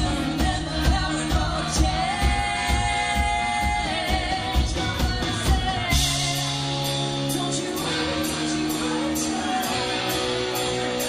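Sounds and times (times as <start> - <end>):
drums steady beat: 0.0 - 11.0
live rock band playing: 0.0 - 11.0
person singing: 0.0 - 11.0.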